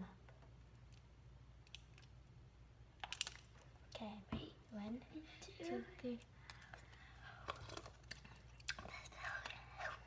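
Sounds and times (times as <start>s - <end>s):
low room hum: 0.0s - 10.0s
girls whispering: 4.0s - 7.6s, 8.9s - 10.0s.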